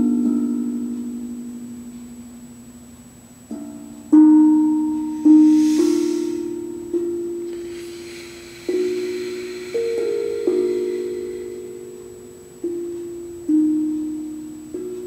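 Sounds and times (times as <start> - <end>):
steel tongue drum melody: 0.0 - 15.0.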